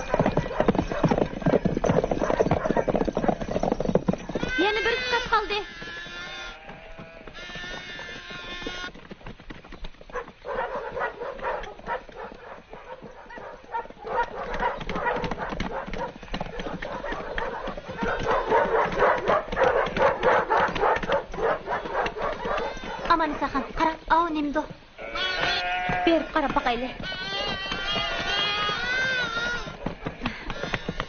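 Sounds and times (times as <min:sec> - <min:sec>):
clatter of animal hooves: 0:00.0 - 0:31.0.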